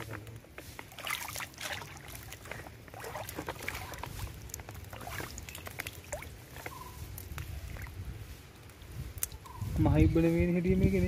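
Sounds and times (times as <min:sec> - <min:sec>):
small splashes and clicks: 0:00.8 - 0:08.0, 0:08.6 - 0:09.4
stream water sloshing: 0:00.9 - 0:07.0.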